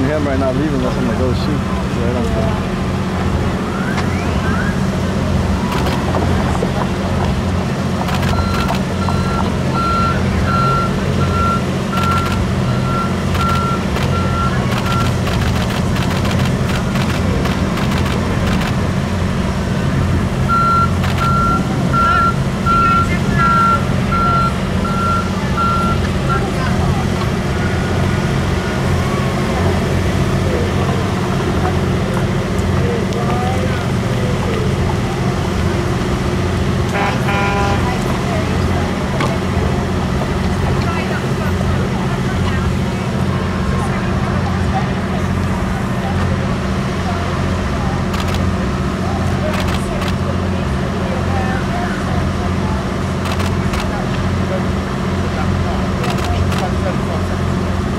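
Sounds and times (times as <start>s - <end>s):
low engine hum: 0.0s - 57.9s
reversing alarm beeping: 8.1s - 15.3s, 20.5s - 26.5s.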